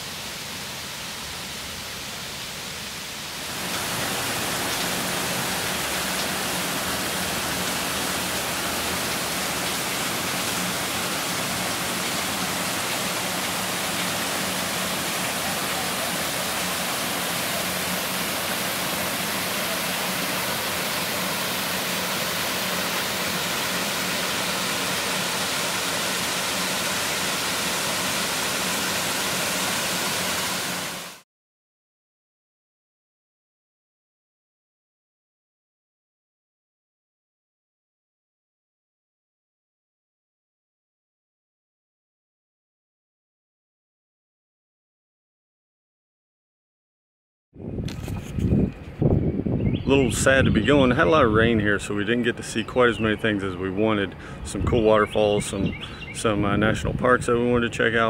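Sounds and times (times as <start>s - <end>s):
creek running over rocks: 0.0s - 31.2s.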